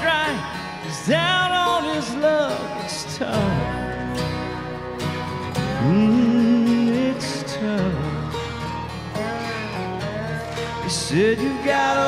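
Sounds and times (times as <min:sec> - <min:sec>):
guitar and band accompaniment: 0:00.0 - 0:12.0
man singing country song: 0:00.0 - 0:12.0.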